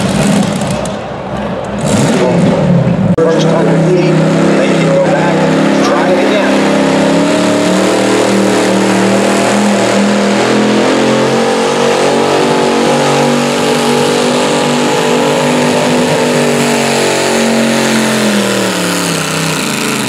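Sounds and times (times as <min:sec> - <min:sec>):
tractor engine running under load: 0:17.3 - 0:20.0.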